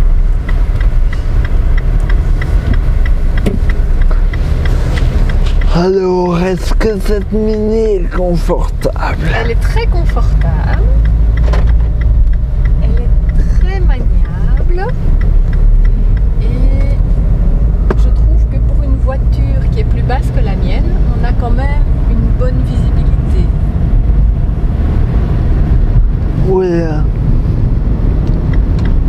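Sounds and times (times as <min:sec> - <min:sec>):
car engine and road rumble: 0:00.0 - 0:29.0.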